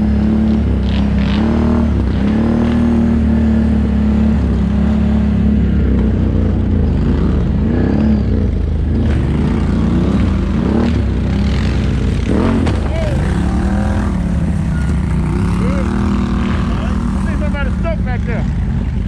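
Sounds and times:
atv engines revving: 0:00.0 - 0:19.0.

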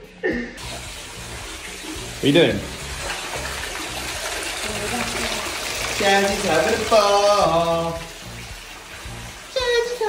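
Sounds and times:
water running into bathtub: 0:00.6 - 0:10.0.

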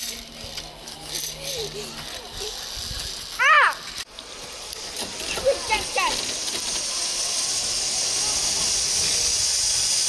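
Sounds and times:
voices outdoors: 0:00.0 - 0:10.0.

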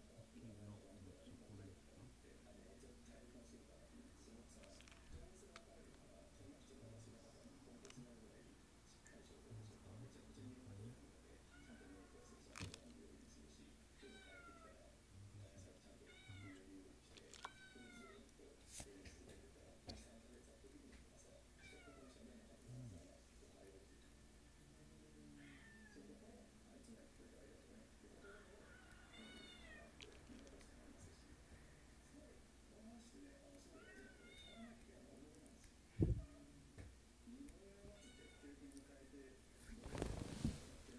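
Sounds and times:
cat meowing faintly: 0:11.4 - 0:12.2, 0:16.0 - 0:16.7, 0:17.3 - 0:18.3, 0:21.6 - 0:22.2, 0:25.4 - 0:26.2, 0:28.2 - 0:30.0, 0:33.7 - 0:34.8, 0:37.8 - 0:38.6
faint animal cry: 0:11.4 - 0:12.3, 0:14.0 - 0:14.9, 0:15.5 - 0:18.3, 0:21.6 - 0:23.1, 0:25.3 - 0:26.2, 0:28.2 - 0:30.0, 0:33.7 - 0:34.8, 0:37.8 - 0:38.7.

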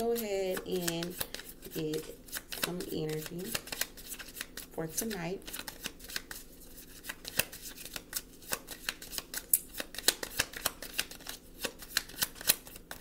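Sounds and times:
cards shuffling clicks: 0:00.4 - 0:13.0.

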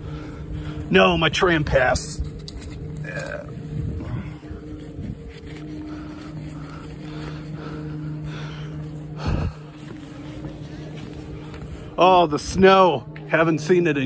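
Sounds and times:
low mechanical hum: 0:00.0 - 0:14.0.

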